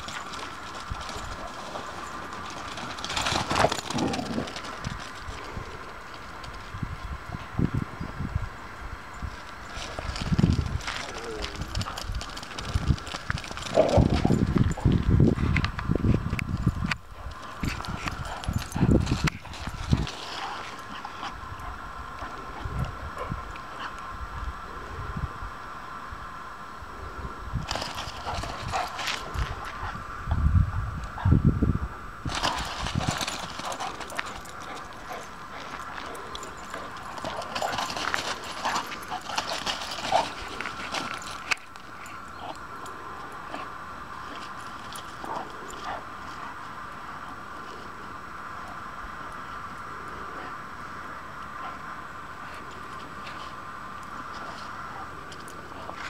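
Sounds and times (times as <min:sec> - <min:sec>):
scuffling paws: 0:00.0 - 0:07.8, 0:09.2 - 0:24.0, 0:27.6 - 0:30.0, 0:32.3 - 0:47.9
dogs playing: 0:00.0 - 0:07.9, 0:09.2 - 0:24.2, 0:27.6 - 0:30.3, 0:32.2 - 0:56.0
faint high hum: 0:00.0 - 0:56.0.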